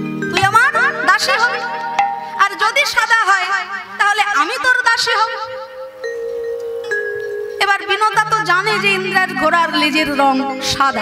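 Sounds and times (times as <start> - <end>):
voice: 0.4 - 1.7, 2.4 - 5.5, 7.6 - 11.0.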